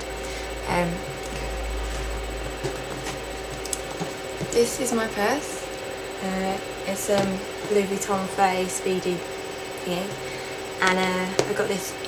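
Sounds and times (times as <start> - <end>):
low rumble: 0.0 - 5.6.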